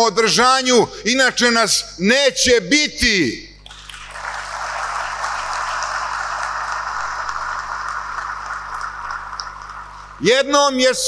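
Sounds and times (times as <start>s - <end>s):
large crowd applauding: 3.7s - 10.2s.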